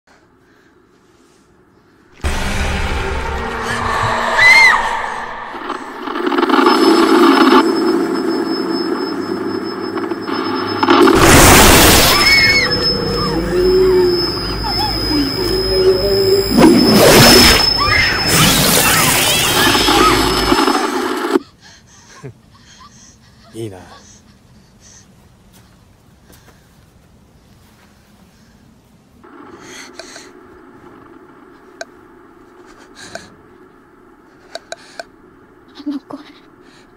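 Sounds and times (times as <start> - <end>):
horror soundtrack noise: 0.8 - 21.4, 29.2 - 36.9
thin high whine: 1.7 - 21.4, 29.2 - 36.9
loud low rumbling drone: 2.1 - 12.0, 12.6 - 18.4
short high arching cry: 3.4 - 5.9.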